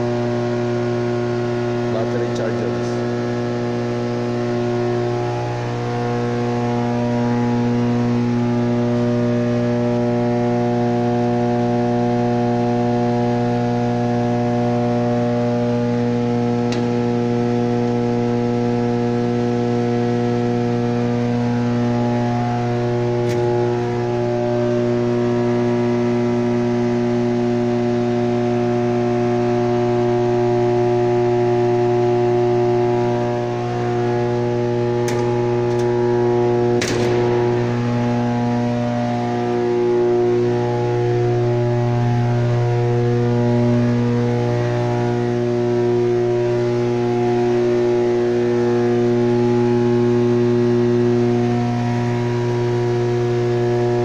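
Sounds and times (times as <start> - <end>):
electrical hum of power equipment: 0.0 - 54.0.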